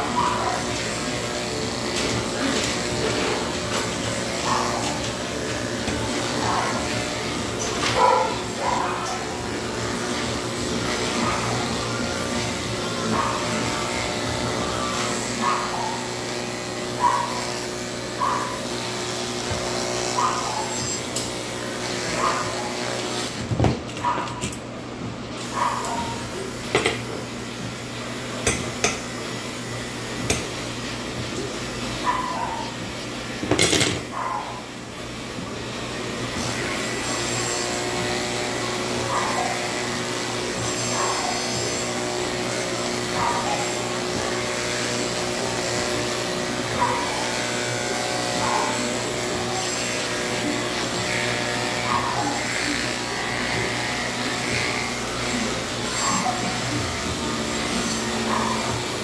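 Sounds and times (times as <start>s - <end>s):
electric clippers humming: 0.0s - 59.0s
dog whining: 14.8s - 16.2s, 20.1s - 21.1s, 25.5s - 26.5s, 32.0s - 32.9s, 51.8s - 52.8s, 55.8s - 56.9s, 58.2s - 59.0s.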